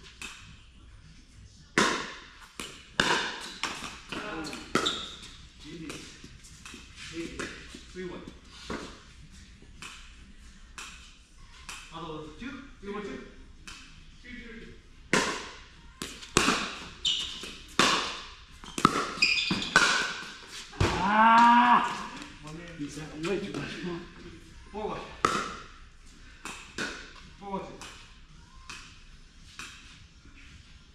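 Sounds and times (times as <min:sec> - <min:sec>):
person shouting: 0:20.8 - 0:22.2.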